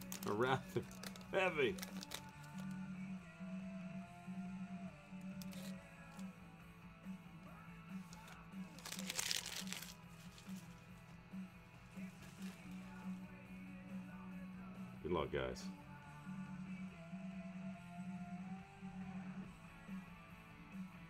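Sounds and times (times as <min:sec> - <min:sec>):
plastic wrapping crinkling: 0:00.0 - 0:02.7, 0:05.4 - 0:06.2, 0:08.1 - 0:10.8, 0:12.2 - 0:13.0
background music with bass pulse: 0:00.0 - 0:21.0.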